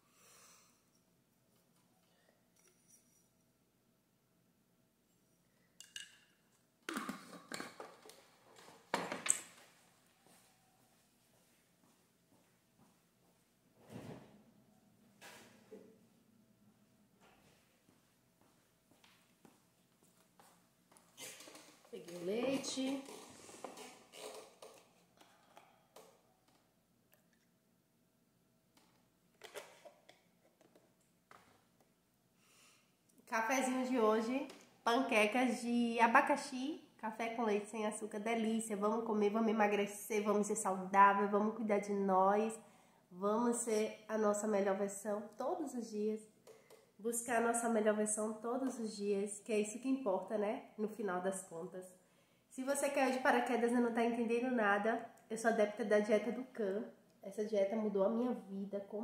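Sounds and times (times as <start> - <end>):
spoon clinking in glass mug: 5.8 - 6.4.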